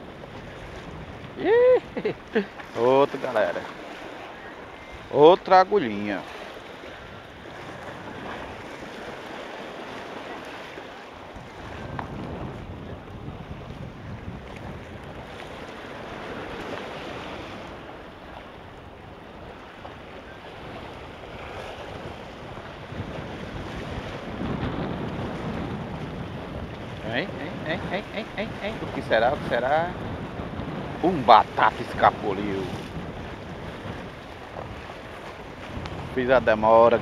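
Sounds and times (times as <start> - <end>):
surf breaking against rocks: 0.0 - 13.3, 19.5 - 37.0
wind buffeting microphone: 0.0 - 37.0.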